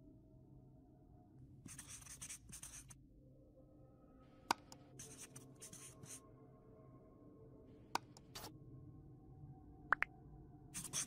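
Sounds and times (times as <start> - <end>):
marker pen scratchy strokes: 1.7 - 2.9, 5.0 - 6.2, 10.8 - 11.0.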